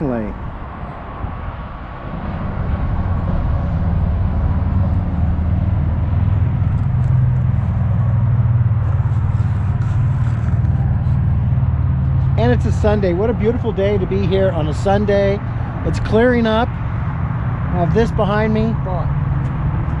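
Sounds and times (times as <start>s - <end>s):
freeway traffic rumble: 0.0s - 20.0s.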